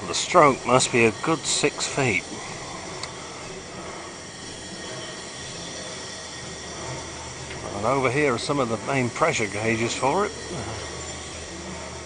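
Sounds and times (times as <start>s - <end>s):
steam engine hissing and running: 0.0s - 12.0s.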